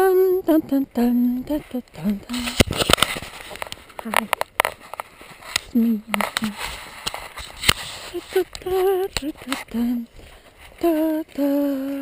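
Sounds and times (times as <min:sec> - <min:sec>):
footsteps on icy gritty road: 0:02.2 - 0:11.5
woman humming: 0:05.7 - 0:06.6.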